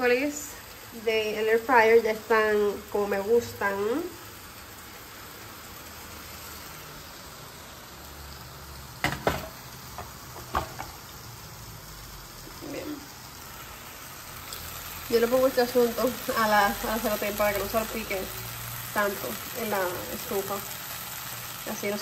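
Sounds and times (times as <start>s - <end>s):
fish sizzling in a pan: 0.0s - 22.0s.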